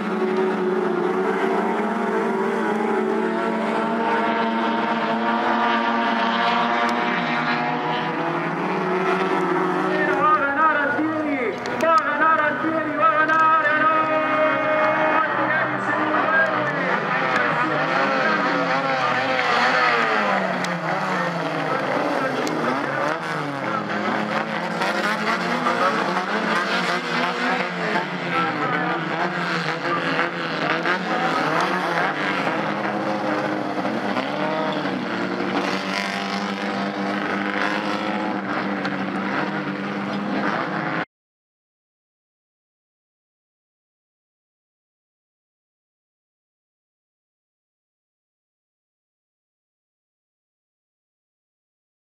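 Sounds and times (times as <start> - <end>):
race car engines revving and passing: 0.0 - 41.1.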